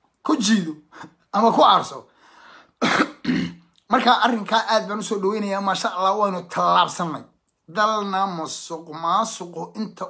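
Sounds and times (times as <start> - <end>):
faint breath: 2.1 - 2.8
man clearing throat: 2.8 - 3.7.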